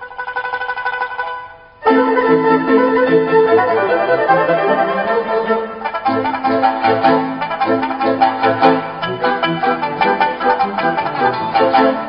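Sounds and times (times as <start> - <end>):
instrumental background music: 1.1 - 12.0.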